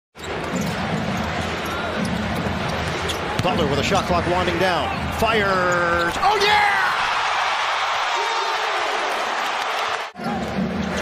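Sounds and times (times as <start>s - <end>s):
arena crowd noise: 0.2s - 11.0s
basketball dribbling on court: 0.3s - 4.1s.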